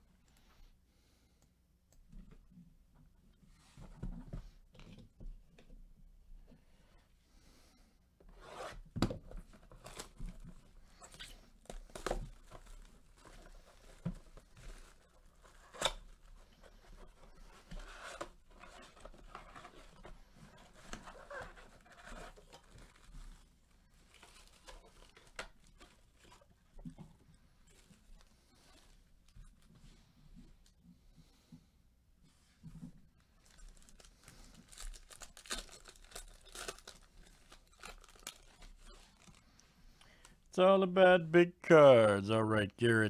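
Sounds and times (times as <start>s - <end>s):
foil card packs rustling: 9.5s - 26.5s, 33.2s - 40.0s
plastic wrap and cardboard ripping: 9.7s - 26.4s, 33.3s - 39.4s.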